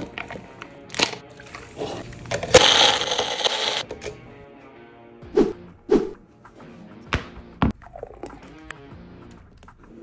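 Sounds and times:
blender running: 2.5s - 3.8s.

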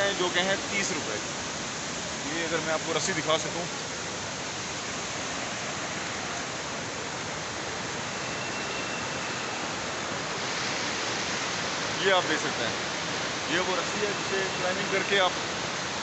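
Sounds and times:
waterfall rushing down rock: 0.0s - 16.0s.

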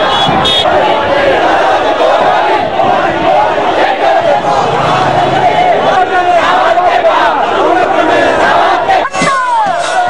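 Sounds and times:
crowd shouting and chanting: 0.0s - 10.0s.

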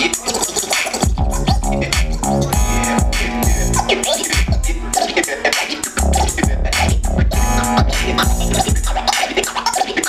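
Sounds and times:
hip-hop beat with heavy bass: 0.0s - 10.0s
record scratching: 0.0s - 10.0s.

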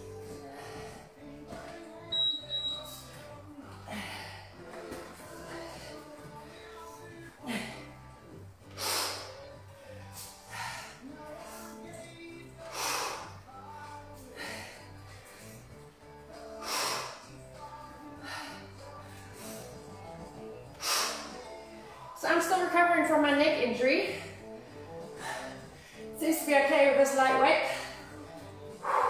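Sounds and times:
background music: 0.0s - 29.0s
woman's hissing exhalations: 8.7s - 11.0s, 20.8s - 21.4s.

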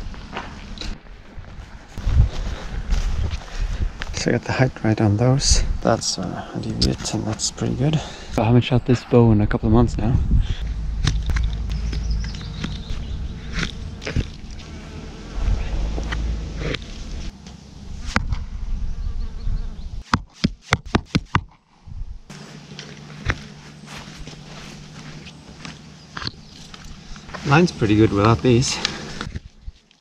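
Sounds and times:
arrows striking target: 10.6s - 14.6s.

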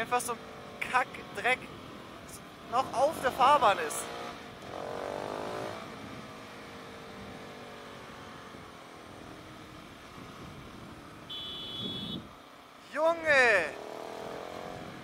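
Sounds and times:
motorcycle engine: 0.0s - 12.5s, 13.3s - 15.0s
wind and road noise: 0.0s - 15.0s.

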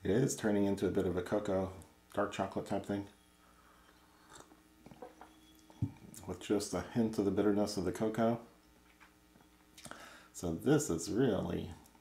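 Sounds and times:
person sipping coffee: 3.8s - 5.0s.

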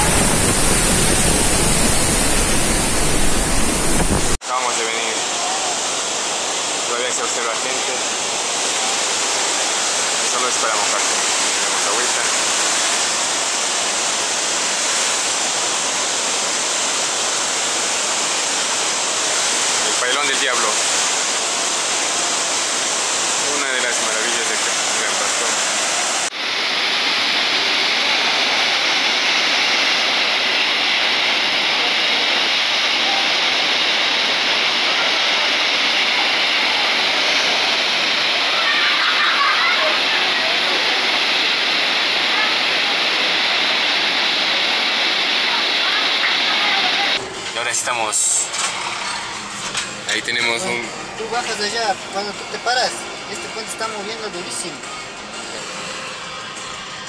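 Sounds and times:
white water churning: 0.0s - 56.5s
waterfall rushing: 0.0s - 57.0s.

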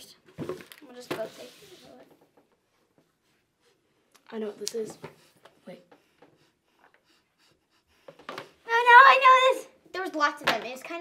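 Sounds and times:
child's drawn-out vocal sound: 8.6s - 9.8s.

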